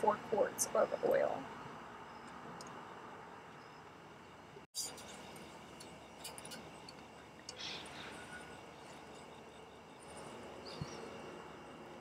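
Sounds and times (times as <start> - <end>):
faint crickets chirping: 1.6 - 12.0.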